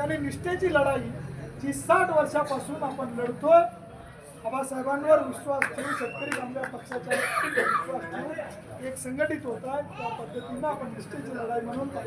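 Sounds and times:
man speaking to gathering: 0.0s - 12.0s.

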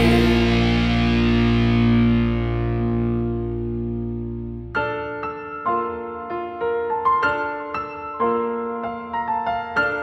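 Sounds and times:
distorted electric guitar chord: 0.0s - 4.7s.

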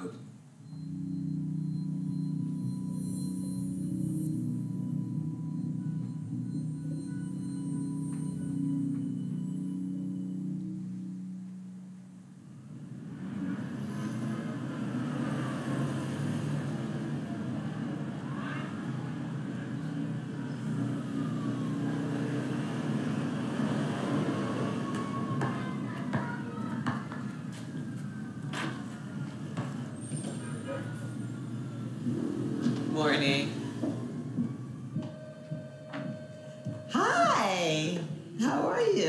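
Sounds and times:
soft sustained music tone: 0.0s - 25.2s, 30.0s - 38.4s
distant siren wailing: 0.0s - 39.0s
traffic noise: 0.0s - 39.0s.

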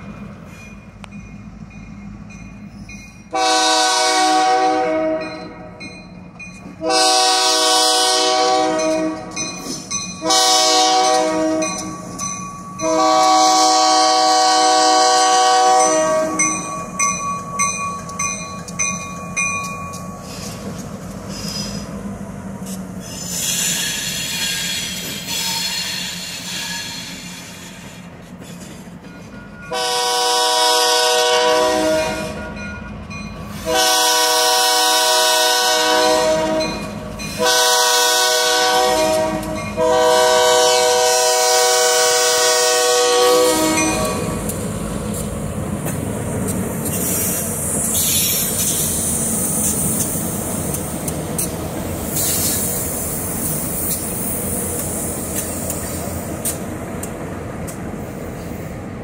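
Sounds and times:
locomotive air horn blasts: 3.3s - 5.7s, 6.8s - 9.4s, 10.2s - 12.0s, 12.8s - 16.6s, 29.7s - 32.5s, 33.6s - 44.4s.

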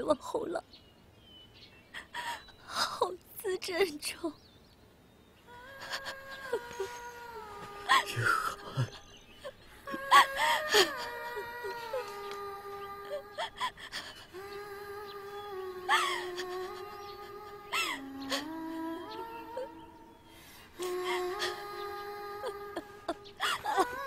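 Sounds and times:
woman crying and wailing: 5.5s - 20.1s, 20.8s - 24.0s.

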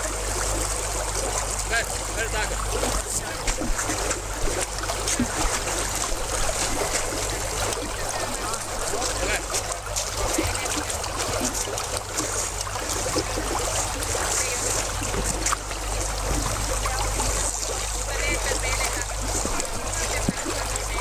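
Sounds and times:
faint voices: 0.0s - 21.0s
low rumble and hiss: 0.0s - 21.0s
water sloshing and trickling: 0.0s - 21.0s.

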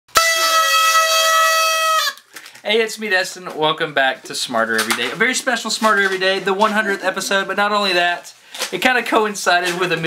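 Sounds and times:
party blowers honking: 0.1s - 2.3s.

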